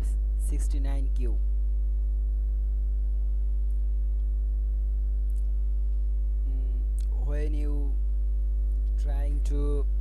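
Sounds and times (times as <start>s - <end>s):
faint high-pitched whine: 0.0s - 10.0s
low electrical hum: 0.0s - 10.0s.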